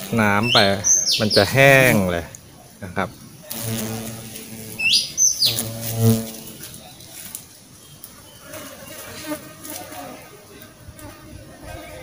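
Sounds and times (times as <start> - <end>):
bird chirping: 0.0 - 9.4
faint outdoor sounds: 0.0 - 12.0
low buzzing hum: 2.9 - 6.8.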